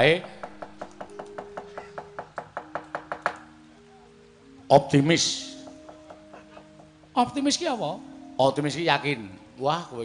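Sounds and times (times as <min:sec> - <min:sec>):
rapid wooden knocking: 0:00.0 - 0:03.5, 0:05.6 - 0:07.1
faint sustained gamelan tones: 0:00.0 - 0:10.0.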